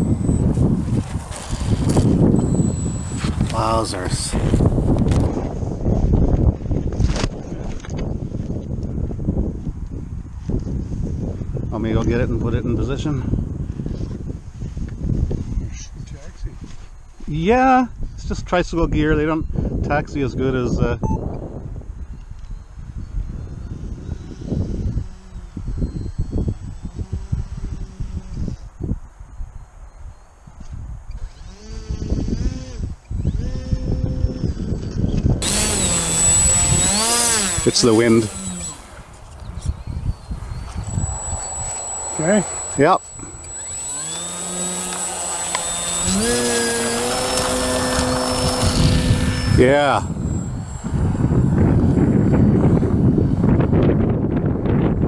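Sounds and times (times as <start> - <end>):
model plane motor whining: 0.0 - 5.3, 23.4 - 28.7, 31.1 - 53.8
wind buffeting microphone: 0.0 - 55.0.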